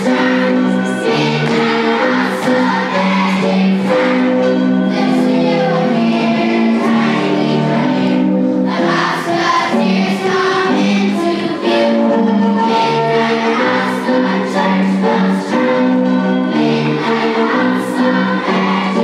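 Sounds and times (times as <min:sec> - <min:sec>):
choir singing long held notes: 0:00.0 - 0:19.0.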